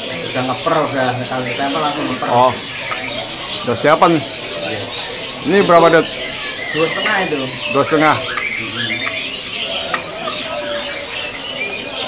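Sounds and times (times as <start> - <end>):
songbirds chirping and whistling: 0.0 - 12.0.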